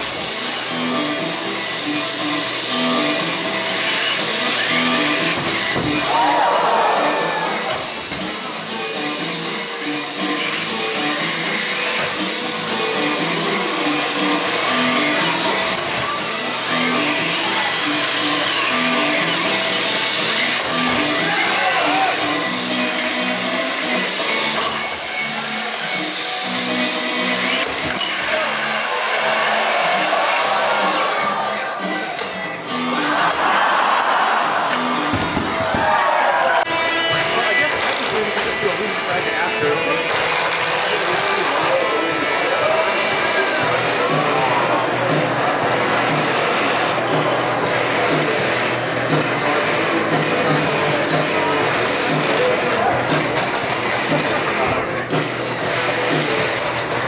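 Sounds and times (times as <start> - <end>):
background music with steady beat: 0.0 - 57.0
crowd chatter: 0.0 - 57.0
electric motors whining: 0.0 - 57.0.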